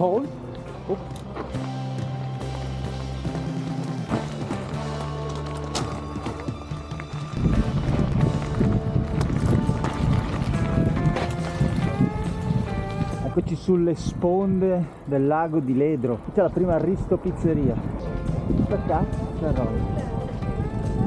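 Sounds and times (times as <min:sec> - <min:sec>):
background music: 0:00.0 - 0:15.8, 0:17.4 - 0:21.0
bike tyres rolling on gravel: 0:00.0 - 0:21.0.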